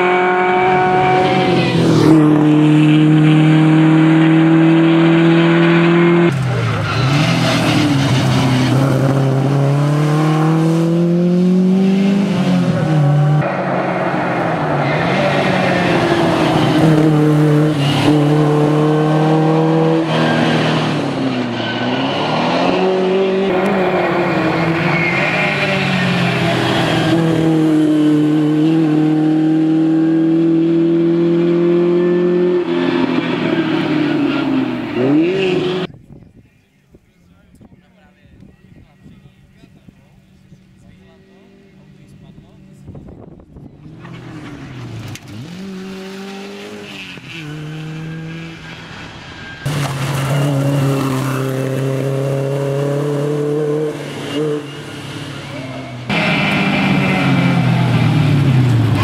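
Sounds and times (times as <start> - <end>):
rally car engine revving hard: 0.0 - 35.9, 43.9 - 49.0, 49.6 - 59.0.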